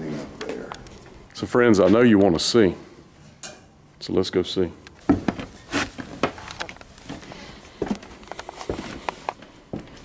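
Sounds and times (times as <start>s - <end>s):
footsteps on concrete floor: 5.0s - 10.0s.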